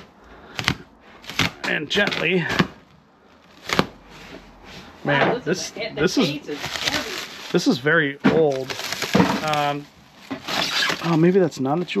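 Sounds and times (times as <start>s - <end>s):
plastic film rustling: 0.0s - 12.0s
knife ripping plastic wrap: 0.6s - 2.8s, 3.5s - 4.0s, 6.2s - 7.8s, 8.4s - 11.3s.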